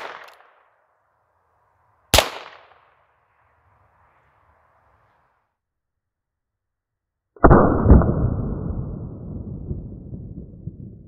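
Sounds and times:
revolver gunshot: 0.0 - 0.5, 2.1 - 2.8
low rumble: 7.4 - 11.0.

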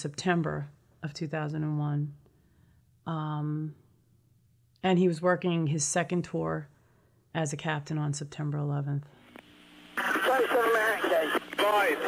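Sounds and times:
speech over a radio: 10.0 - 12.0.

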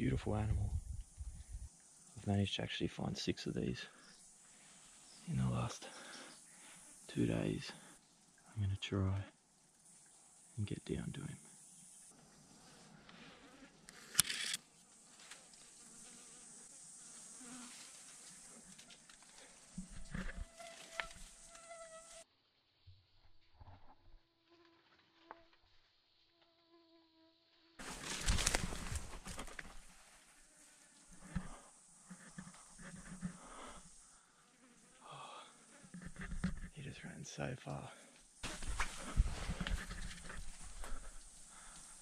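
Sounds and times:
high insect hiss: 0.0 - 22.3, 24.6 - 42.0
flies buzzing: 3.9 - 8.4, 11.3 - 22.2, 27.8 - 36.8, 37.8 - 42.0
rustles in brush: 17.0 - 22.2, 27.8 - 34.1, 38.4 - 42.0.

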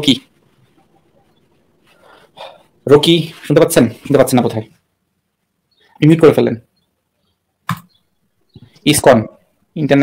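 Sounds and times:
person speaking: 0.0 - 4.9, 5.8 - 6.8, 7.7 - 10.0.

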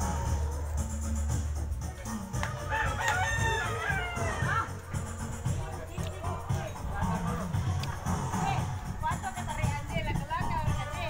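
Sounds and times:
background music: 0.0 - 11.0
rooster crowing: 2.6 - 4.8.

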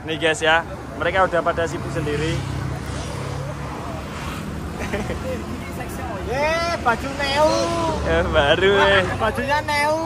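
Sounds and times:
people chattering: 0.0 - 10.0
road traffic rumble: 0.0 - 10.0.

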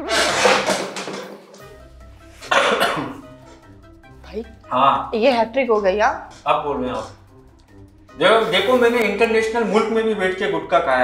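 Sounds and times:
music with held notes: 1.6 - 11.0
man coughing: 2.4 - 3.2.

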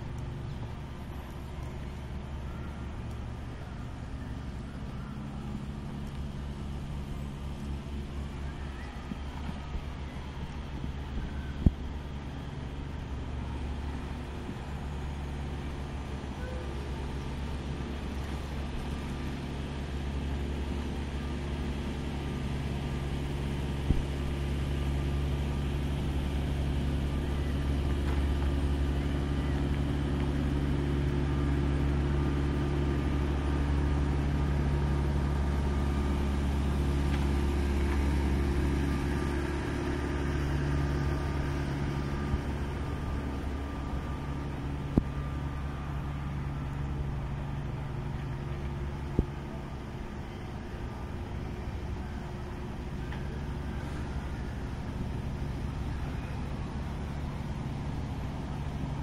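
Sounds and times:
distant road traffic rumble: 0.0 - 59.0.

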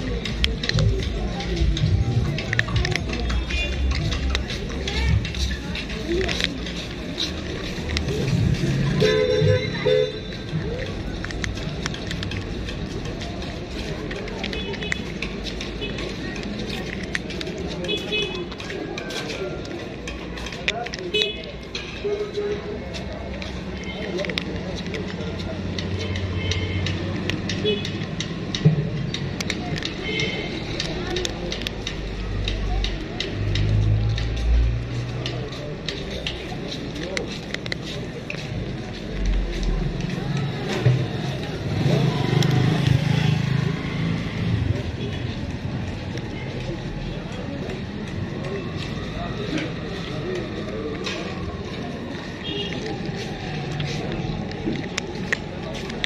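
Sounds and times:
vehicle engine humming: 0.0 - 56.0.

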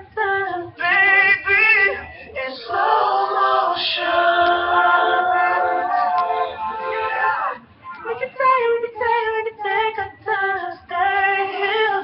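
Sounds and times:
voices singing in harmony: 0.7 - 8.3.

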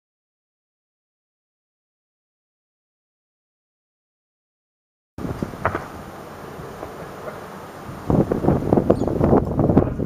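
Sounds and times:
wind buffeting microphone: 5.2 - 10.0.

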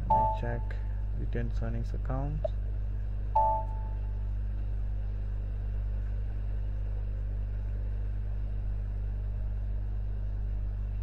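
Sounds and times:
low mains hum: 0.0 - 11.0.

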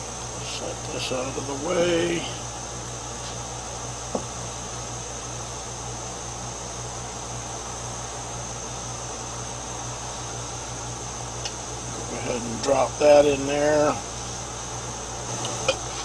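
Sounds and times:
electrical hum with hiss: 0.0 - 16.0.

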